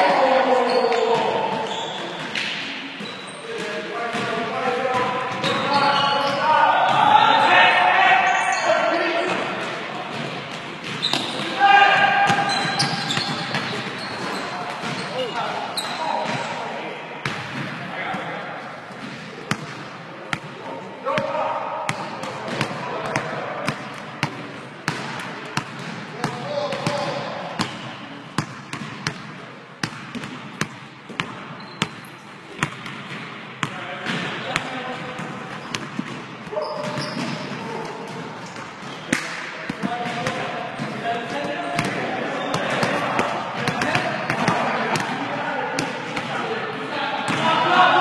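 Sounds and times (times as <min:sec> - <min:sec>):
players calling out: 0:10.8 - 0:18.3.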